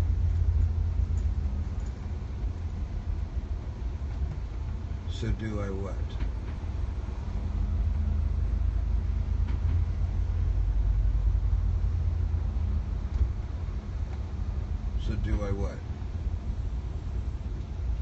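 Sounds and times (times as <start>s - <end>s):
bus engine and road rumble: 0.0s - 18.0s
faint hum: 0.0s - 18.0s.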